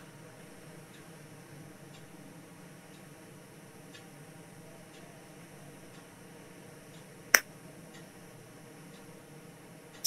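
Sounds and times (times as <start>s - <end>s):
faint steady hiss: 0.0s - 10.0s.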